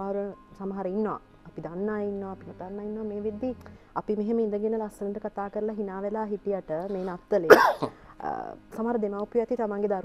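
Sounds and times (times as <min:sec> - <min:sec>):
woman speaking: 0:00.0 - 0:10.0
person clearing throat: 0:07.5 - 0:07.9.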